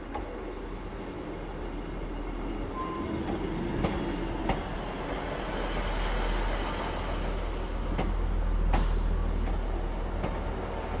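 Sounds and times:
diesel train engine rumbling: 0.0 - 11.0.

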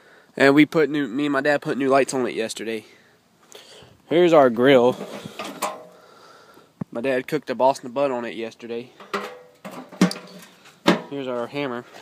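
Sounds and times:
grill lid clicks and knocks: 9.0 - 11.1.

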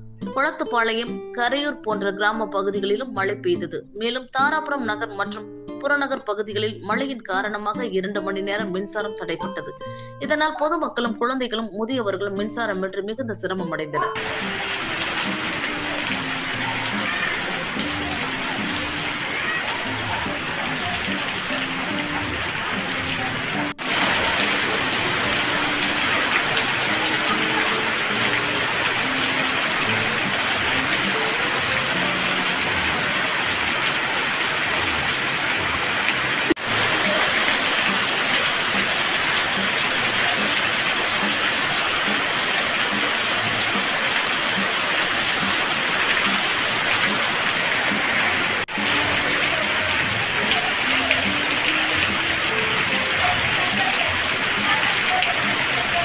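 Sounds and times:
heavy rain pouring: 14.2 - 56.0.

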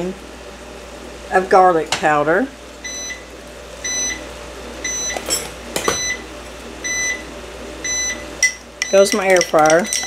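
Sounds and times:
air fryer timer beeping: 2.8 - 5.2, 5.8 - 10.0.

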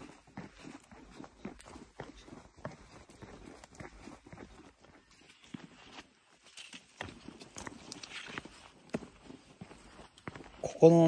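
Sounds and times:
footsteps on wooden boardwalk: 0.0 - 11.0.

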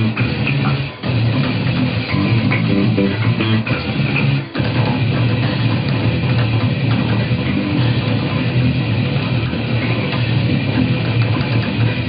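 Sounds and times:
drums: 0.0 - 12.0
electric bass playing fast metal: 0.0 - 12.0
electric guitar: 0.0 - 12.0.

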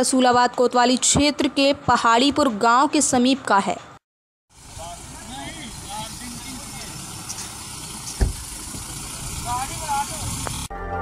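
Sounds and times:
vehicle engine idling: 4.5 - 10.7
sharp thump: 8.1 - 8.8.

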